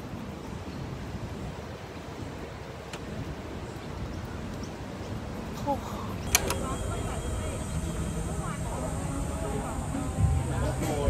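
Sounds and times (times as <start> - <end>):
diners' voices chattering: 5.6 - 11.0
sharp clicks: 6.2 - 6.8
low hum: 6.2 - 11.0.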